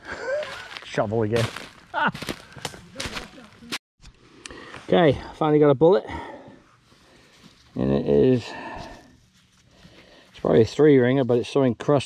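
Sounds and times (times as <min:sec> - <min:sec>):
footsteps crunching dry leaves: 0:00.1 - 0:03.8.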